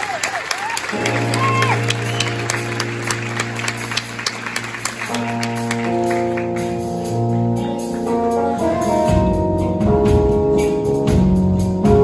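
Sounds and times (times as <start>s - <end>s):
audience clapping: 0.0s - 7.2s.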